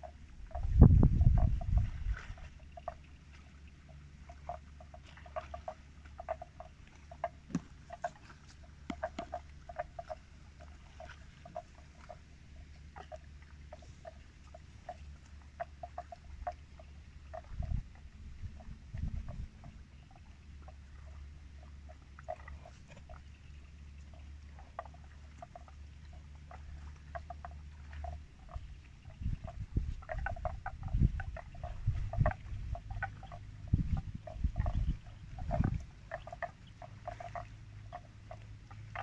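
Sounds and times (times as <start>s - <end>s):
low steady rumble: 0.0s - 39.0s.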